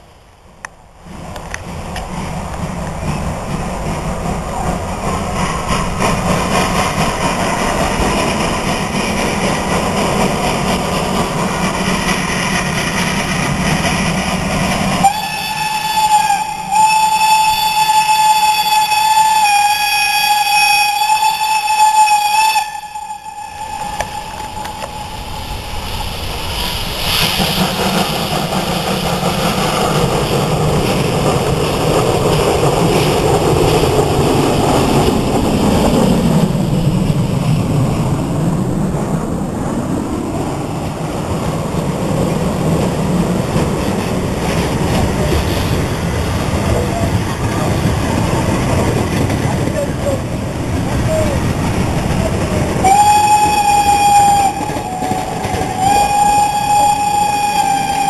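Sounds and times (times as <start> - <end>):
train running noise: 0.0 - 58.0
steam locomotive whistle blast: 15.0 - 25.4, 52.8 - 58.0.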